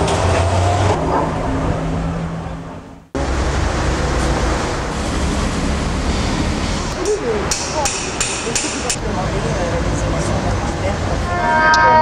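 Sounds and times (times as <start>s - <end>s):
traffic rumble and hiss: 0.0s - 11.6s.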